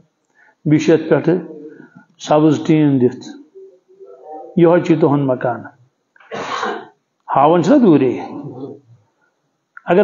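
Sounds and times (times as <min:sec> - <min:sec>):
man speaking: 0:00.6 - 0:05.9, 0:07.3 - 0:09.0
man coughing: 0:06.2 - 0:07.0.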